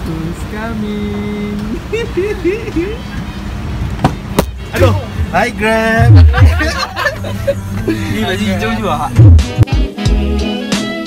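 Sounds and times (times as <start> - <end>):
car engine idling: 0.0 - 9.4.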